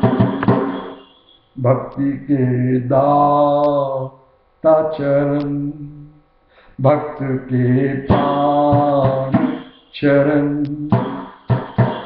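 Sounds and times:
keyboard and drum music: 0.0 - 1.0, 8.1 - 9.8, 10.9 - 12.0
man singing long held notes: 1.6 - 11.1.

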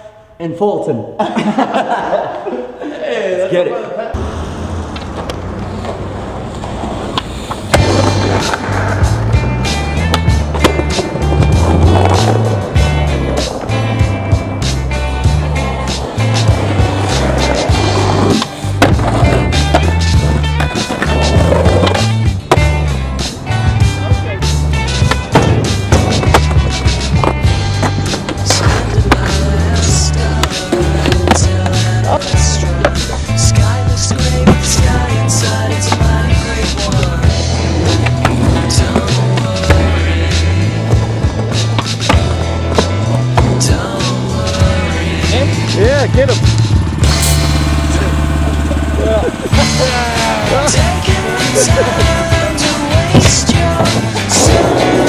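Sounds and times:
skateboard wheels rolling on concrete: 4.1 - 55.0
skateboard grinding on rail: 4.2 - 45.8, 46.4 - 55.0
skateboard landings: 4.8 - 24.0, 24.6 - 32.1, 32.7 - 44.9, 49.7 - 55.0
music with repeating bass line: 7.8 - 55.0
skateboard tail pops: 10.0 - 12.2.

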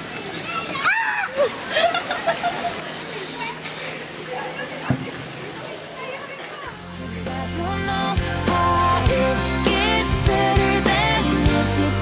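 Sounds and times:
outdoor background noise: 0.0 - 9.9.

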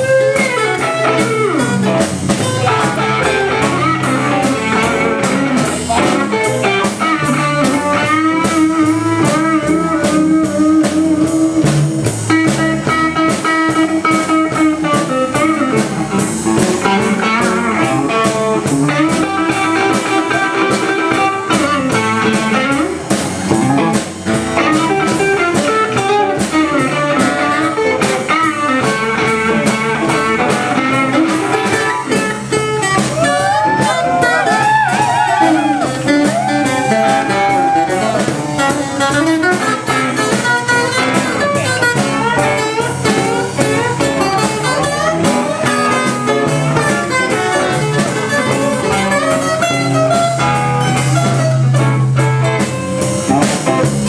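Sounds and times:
bending lead guitar lines: 0.0 - 54.0
blues band playing: 0.0 - 54.0.

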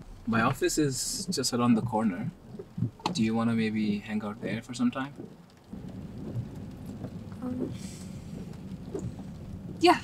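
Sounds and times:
low rumble of thunder: 4.3 - 10.0.

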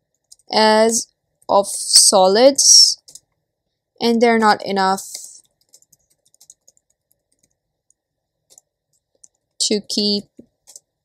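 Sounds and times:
keyboard typing: 0.0 - 0.6, 3.0 - 3.4, 4.2 - 11.0.

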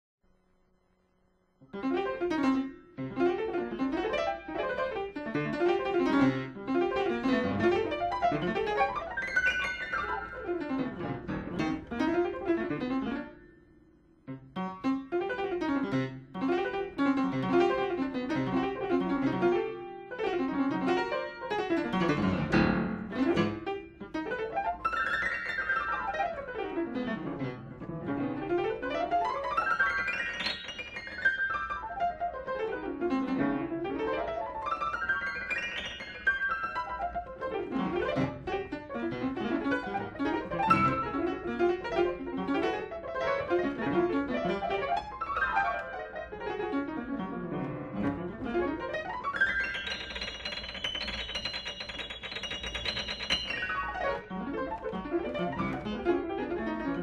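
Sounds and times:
solo piano improvisation: 1.6 - 57.0.

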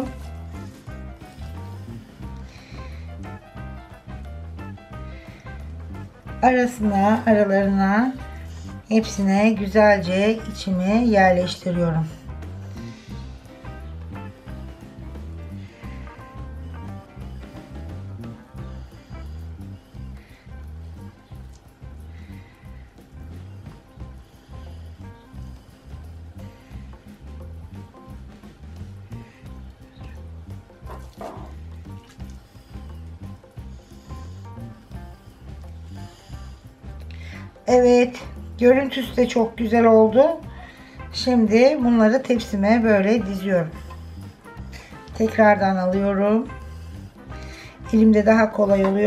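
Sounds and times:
music with repeating beat: 0.0 - 49.0.

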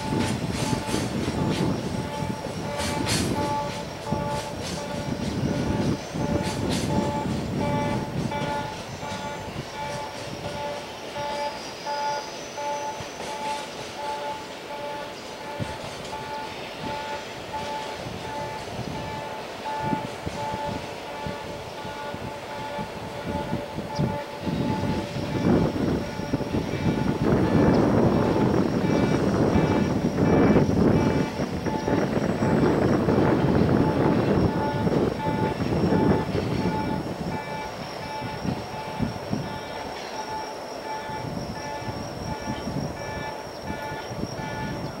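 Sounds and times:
train wheels clattering on rails: 0.0 - 45.0.

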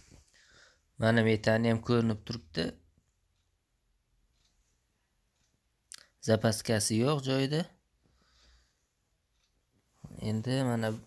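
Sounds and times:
person speaking: 1.0 - 3.0, 5.8 - 7.8, 10.0 - 11.0.

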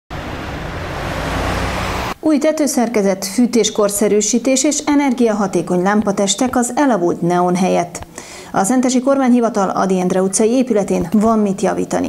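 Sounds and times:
road traffic passing: 0.1 - 2.2.

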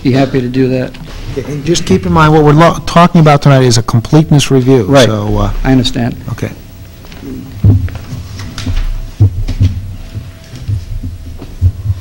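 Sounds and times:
faint steady hum: 0.0 - 12.0
low thumps: 7.4 - 12.0.

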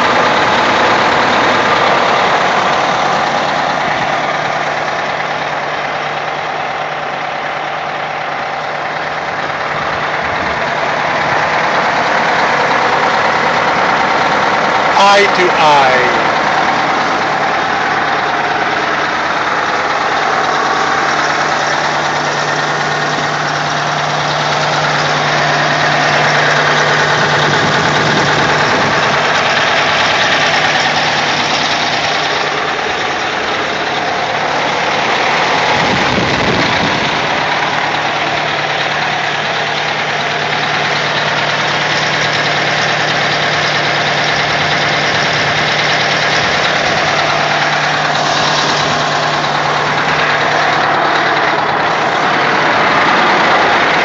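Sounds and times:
diesel engine idling: 0.0 - 54.0.

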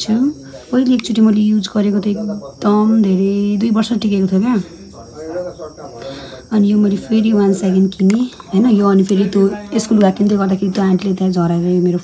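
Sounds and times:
woman's voice: 0.0 - 4.7, 6.5 - 12.0.

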